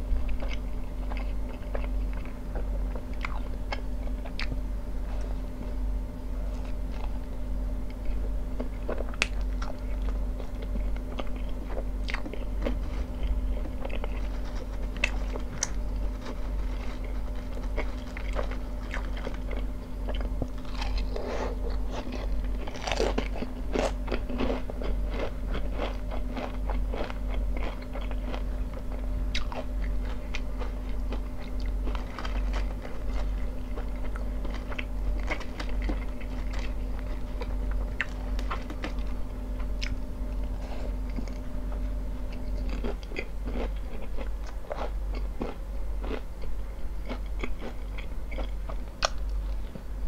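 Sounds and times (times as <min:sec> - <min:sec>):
chewing crunchy chips: 0:00.1 - 0:05.3, 0:06.4 - 0:49.9.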